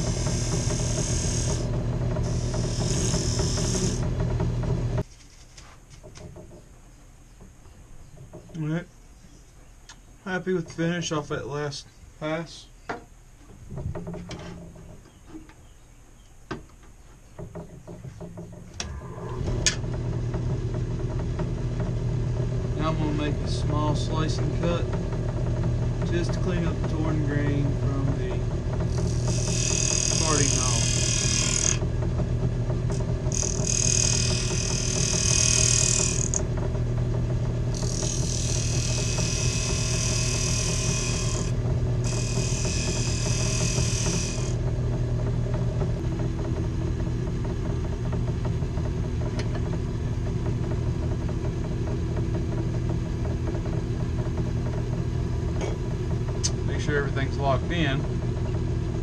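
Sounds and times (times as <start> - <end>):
wood lathe motor running: 0.0 - 5.0, 18.3 - 59.0
chisel slicing spinning wood: 0.0 - 5.1, 17.4 - 58.0.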